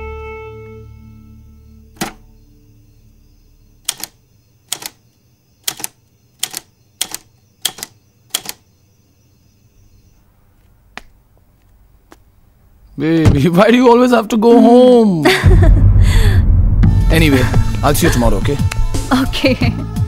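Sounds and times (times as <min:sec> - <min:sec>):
typewriter keys clacking: 0:03.9 - 0:04.1, 0:04.7 - 0:05.0, 0:05.7 - 0:08.6.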